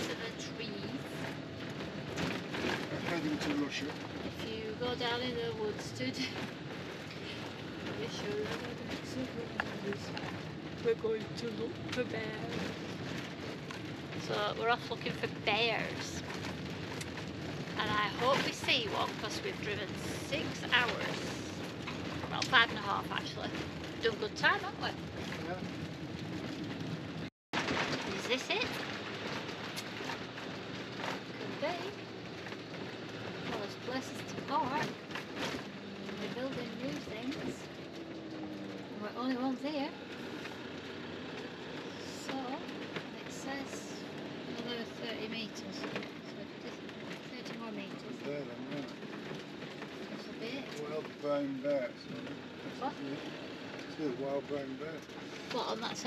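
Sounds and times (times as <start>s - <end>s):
engine and road noise: 0.0s - 56.0s
knocks and rattles: 0.0s - 56.0s
quiet talk: 50.1s - 53.3s, 53.9s - 56.0s.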